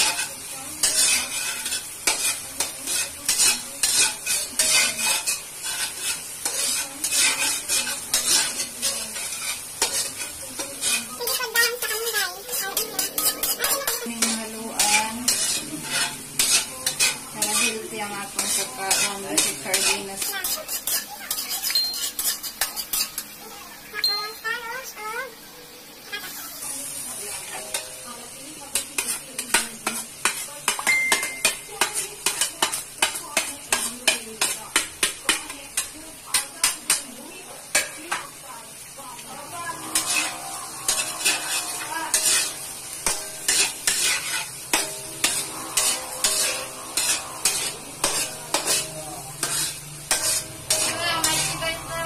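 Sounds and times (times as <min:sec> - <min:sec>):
metal spatula scraping a wok: 0:00.0 - 0:52.0
vegetables sizzling: 0:00.0 - 0:52.0.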